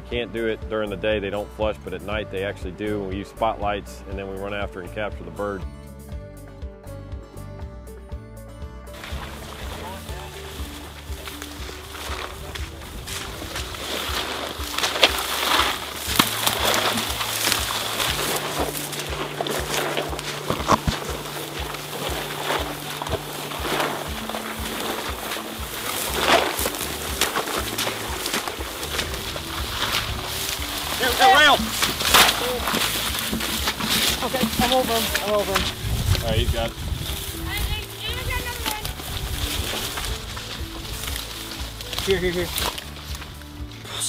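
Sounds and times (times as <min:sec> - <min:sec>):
low held music notes: 0:00.0 - 0:44.0
dry grass rustling and crackling: 0:08.9 - 0:44.0.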